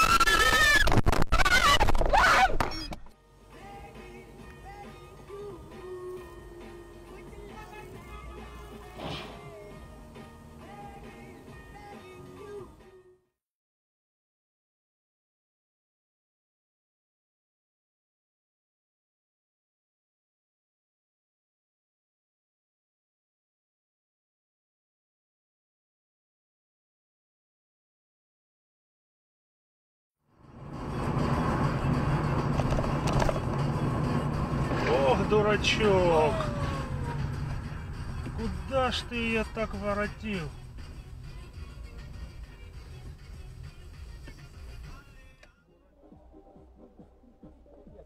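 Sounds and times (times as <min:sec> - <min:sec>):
road noise: 0:00.0 - 0:13.0, 0:30.3 - 0:45.5
music: 0:03.1 - 0:13.4, 0:30.3 - 0:48.0
distant vehicle crash: 0:09.0 - 0:09.5
car engine: 0:30.3 - 0:44.8.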